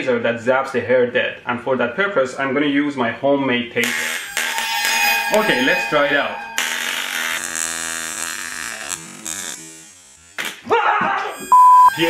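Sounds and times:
sharp burst of noise: 3.8 - 8.4
taser buzzing: 3.8 - 10.6.

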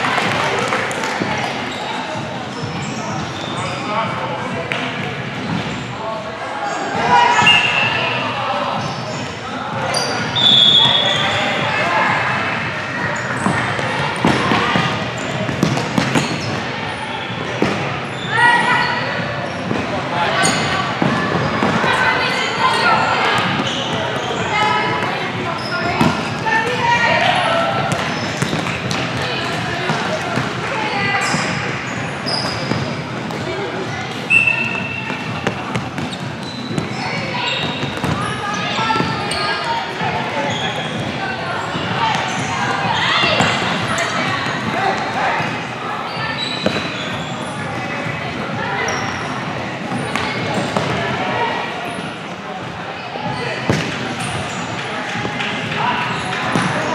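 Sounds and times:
players calling out in a hall: 0.0 - 56.9
sneakers squeaking: 0.1 - 6.0, 6.6 - 56.9.

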